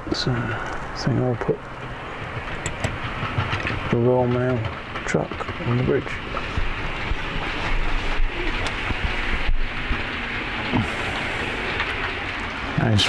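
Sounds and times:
model train whirring on track: 0:00.2 - 0:13.0.

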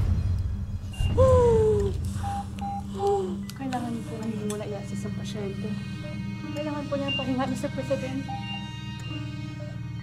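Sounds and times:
patient monitor beeping: 0:01.0 - 0:10.0.

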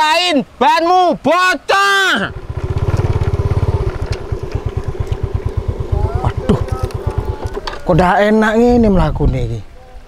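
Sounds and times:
motorcycle engine running low: 0:02.3 - 0:08.1.

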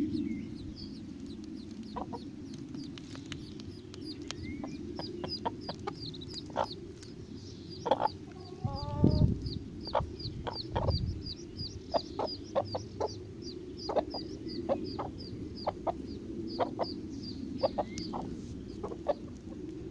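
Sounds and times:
duckling peeping: 0:00.2 - 0:19.6
drawn-out bird call: 0:00.8 - 0:06.9, 0:07.6 - 0:19.6
hens clucking: 0:01.7 - 0:02.6, 0:03.2 - 0:07.1, 0:07.8 - 0:11.2, 0:11.9 - 0:13.2, 0:13.8 - 0:17.0, 0:17.6 - 0:19.9.

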